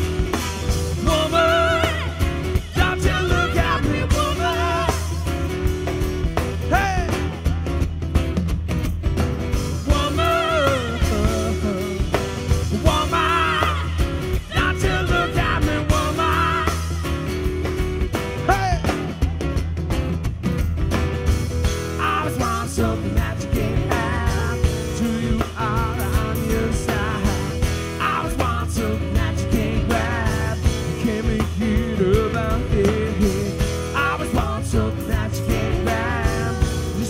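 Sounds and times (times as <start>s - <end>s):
drum kit and cymbals: 0.0s - 37.0s
guitars: 0.0s - 37.0s.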